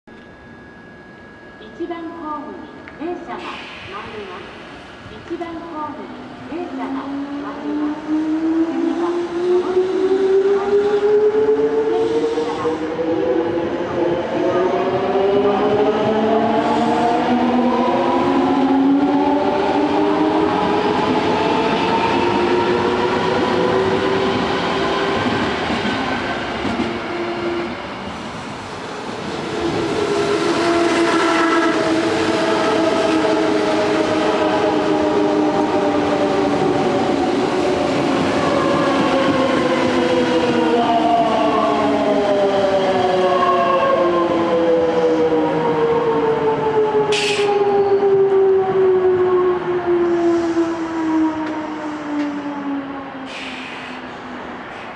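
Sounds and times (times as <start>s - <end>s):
electric train inverter whine: 0.1s - 54.9s
train wheels rumbling on rail: 2.8s - 54.9s.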